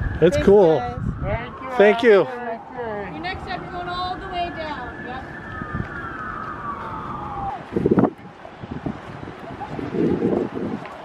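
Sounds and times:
wind noise on microphone: 0.0s - 2.2s, 3.2s - 11.0s
siren wailing: 0.0s - 8.8s.

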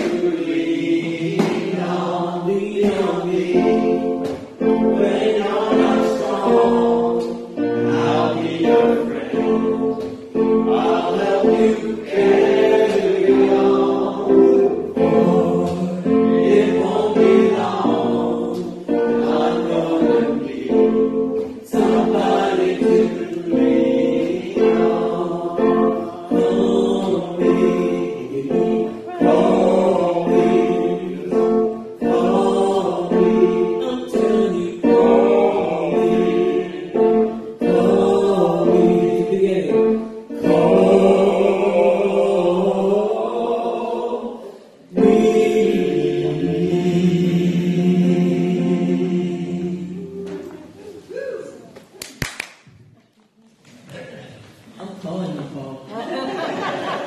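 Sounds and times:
person singing into a microphone: 0.0s - 47.2s
acoustic guitar: 0.0s - 51.6s
congregation singing a hymn: 0.0s - 51.6s, 55.9s - 57.0s.

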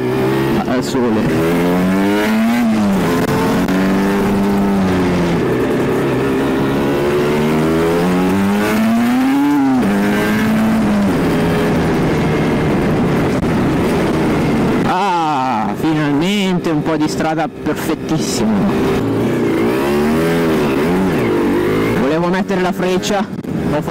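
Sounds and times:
two-stroke motorcycle engine revving: 0.0s - 23.9s
wind rushing: 1.2s - 16.1s.

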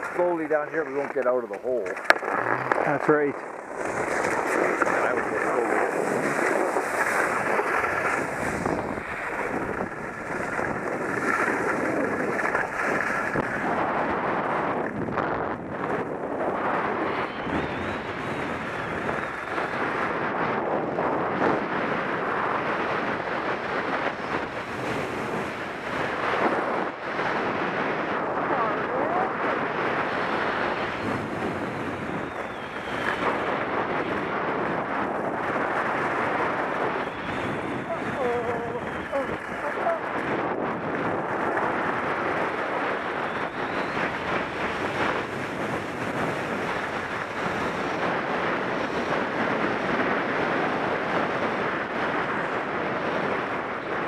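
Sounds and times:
skis scraping over snow: 0.0s - 17.0s, 18.2s - 53.4s
wind on microphone: 0.0s - 54.0s.

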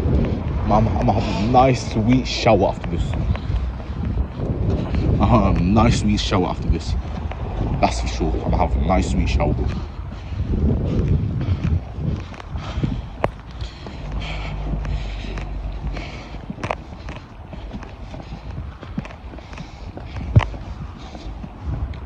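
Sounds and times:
footsteps walking: 0.0s - 22.0s.

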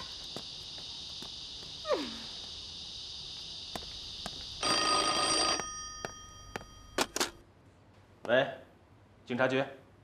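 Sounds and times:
telephone bell ringing: 4.6s - 7.4s.

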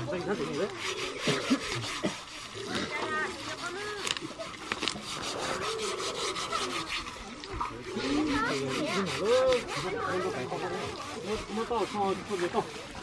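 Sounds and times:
rhythmic scraping strokes: 0.0s - 13.0s.

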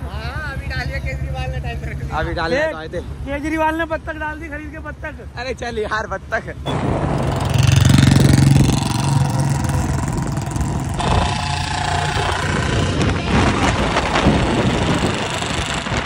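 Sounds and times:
motorcycle engines running: 0.0s - 16.0s.

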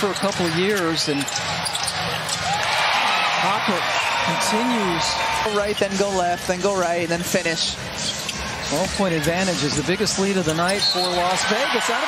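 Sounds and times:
sneaker squeaks on hardwood: 0.0s - 2.5s, 10.4s - 11.4s
arena crowd noise: 0.0s - 12.0s.

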